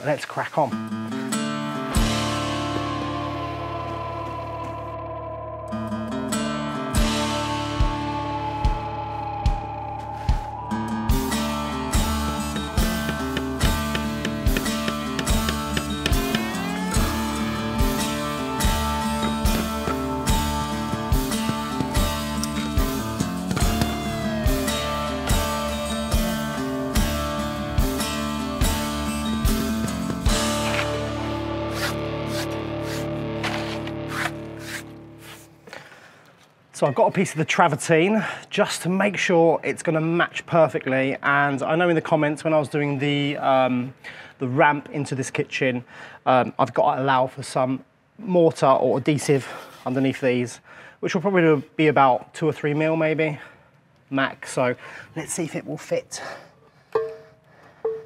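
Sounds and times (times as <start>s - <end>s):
guitar music over steady beat: 0.8s - 35.4s.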